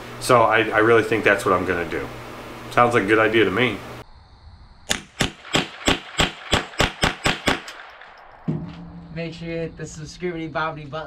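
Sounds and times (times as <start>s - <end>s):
rifle shots fired rapidly: 4.9s - 8.6s.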